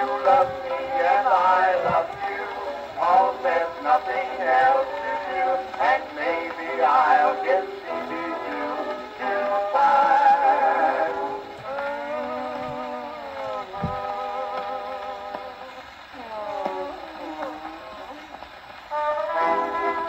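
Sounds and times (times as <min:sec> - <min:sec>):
old dance band record: 0:00.0 - 0:20.0.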